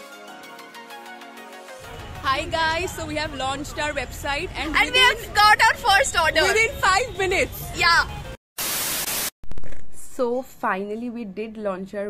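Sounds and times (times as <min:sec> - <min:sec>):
hiss: 0:08.6 - 0:09.3
white noise static burst: 0:08.6 - 0:09.3.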